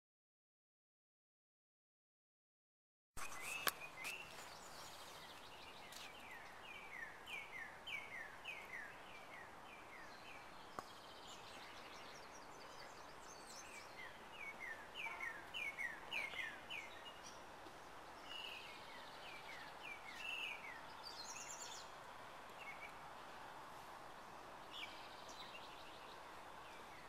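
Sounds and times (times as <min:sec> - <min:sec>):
faint background noise: 0:03.2 - 0:27.0.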